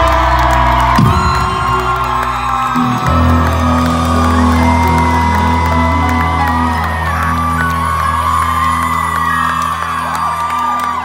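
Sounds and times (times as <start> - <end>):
crowd cheering and whooping: 0.0 - 11.0
pop band sustained chord: 0.0 - 11.0.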